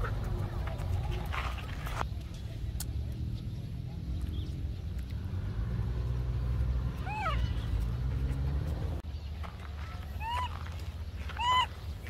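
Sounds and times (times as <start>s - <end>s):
young monkey coo calls: 11.3s - 11.7s.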